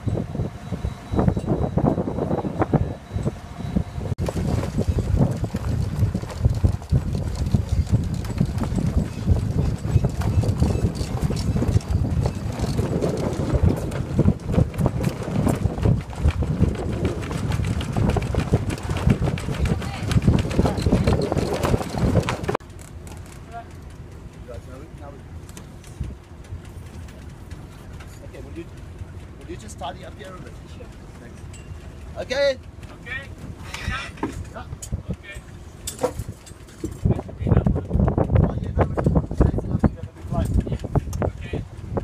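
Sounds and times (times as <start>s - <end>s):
wind buffeting microphone: 0.0s - 22.6s, 24.1s - 42.0s
sail flapping and knocking: 4.2s - 42.0s.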